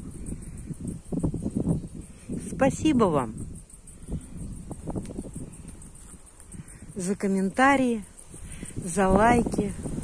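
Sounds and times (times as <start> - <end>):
insects chirring: 0.0 - 10.0
wind rumbling on microphone: 0.0 - 10.0.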